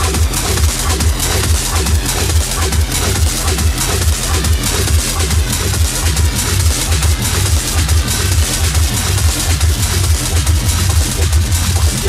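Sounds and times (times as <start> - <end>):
hissing hi-hats: 0.0 - 12.0
techno kick drum: 0.0 - 12.0.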